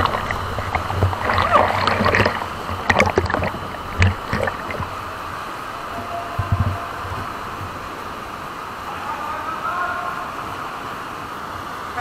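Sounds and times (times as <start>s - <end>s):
whitewater rushing: 0.0s - 12.0s.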